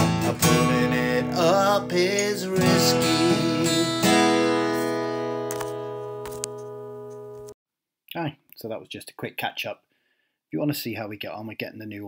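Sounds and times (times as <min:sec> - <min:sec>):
strummed acoustic guitar chord: 0:00.0 - 0:07.0.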